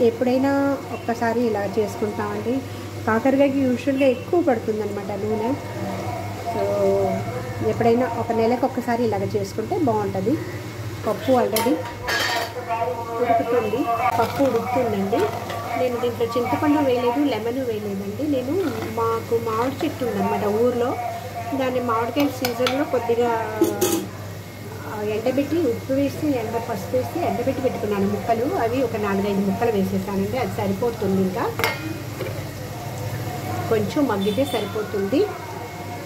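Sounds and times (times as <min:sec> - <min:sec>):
woman talking: 0:00.0 - 0:31.6, 0:33.4 - 0:35.6
person talking: 0:11.1 - 0:24.0
metal utensil clattering on pan: 0:11.5 - 0:12.6, 0:18.5 - 0:20.0, 0:31.6 - 0:32.4.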